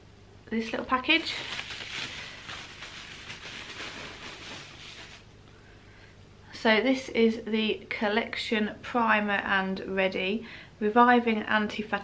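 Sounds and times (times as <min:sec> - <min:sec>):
bubble wrap crinkling: 0:01.0 - 0:05.3.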